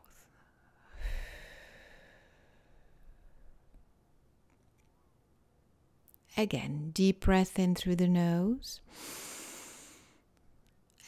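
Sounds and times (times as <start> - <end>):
woman breathing in through nose: 0.8 - 2.9, 8.9 - 10.2.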